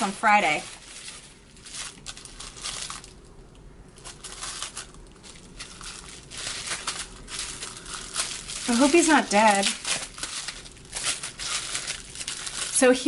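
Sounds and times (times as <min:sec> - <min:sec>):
plastic wrapping crinkling: 0:00.0 - 0:13.0.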